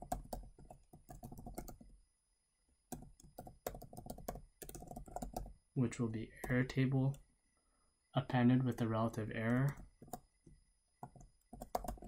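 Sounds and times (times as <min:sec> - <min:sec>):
typing on a computer keyboard: 0:00.0 - 0:02.0, 0:02.9 - 0:05.6, 0:08.6 - 0:12.0.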